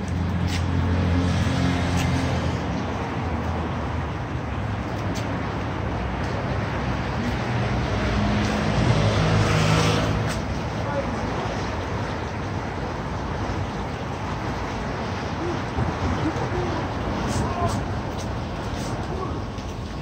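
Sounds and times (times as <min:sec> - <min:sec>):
city street traffic: 0:00.0 - 0:20.0
vehicle engine passing: 0:06.7 - 0:11.7.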